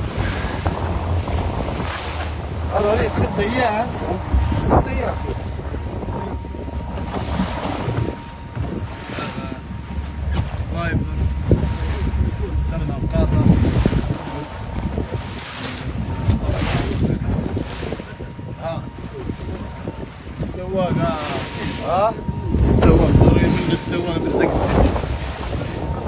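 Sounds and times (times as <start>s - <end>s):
low rumble: 0.0s - 26.0s
water splashing against boat hull: 0.0s - 26.0s
wind rushing over microphone: 0.0s - 26.0s.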